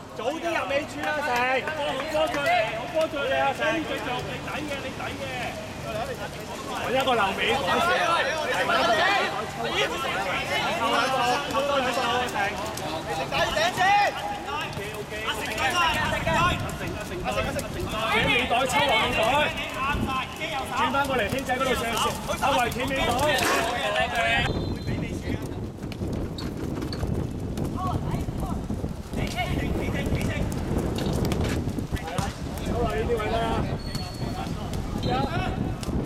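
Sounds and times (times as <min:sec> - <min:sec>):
players shouting: 0:00.3 - 0:24.5
running feet on wet surface: 0:00.3 - 0:36.0
footsteps and ball touches: 0:09.8 - 0:36.0.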